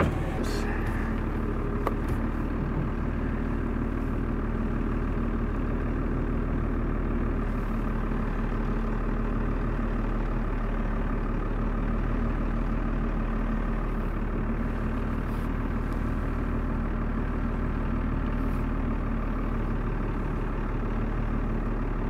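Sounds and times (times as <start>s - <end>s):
truck engine running slowly: 0.0s - 22.0s.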